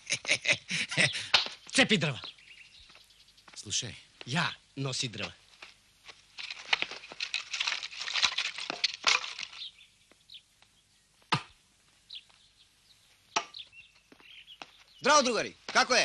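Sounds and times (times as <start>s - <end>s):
axe chopping wood: 13.4s - 13.6s.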